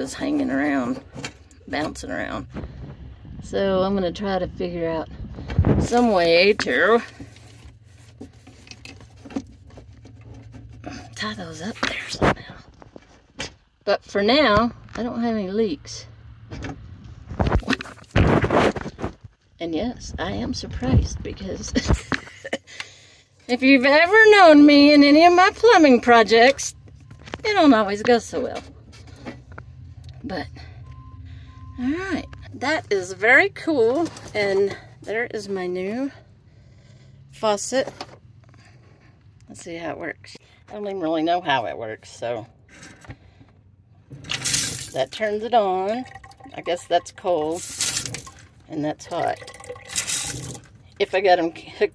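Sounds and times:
water splashing into steel sink: 44.2 - 45.1, 45.8 - 48.5, 49.1 - 50.7.

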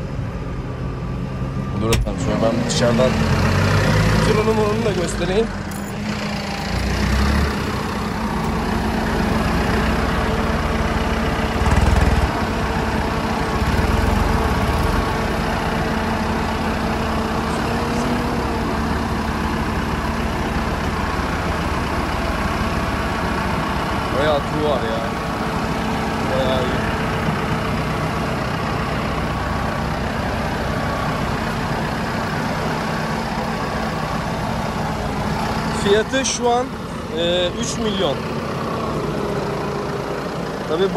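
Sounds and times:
tractor diesel engine idling: 0.0 - 40.9.

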